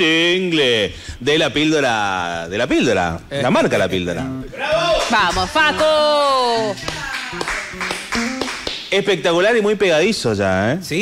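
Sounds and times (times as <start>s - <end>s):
hand claps and taps: 6.8s - 8.9s.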